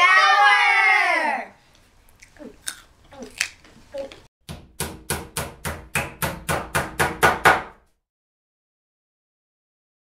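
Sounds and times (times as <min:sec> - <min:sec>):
hammer strikes: 0:04.4 - 0:07.8.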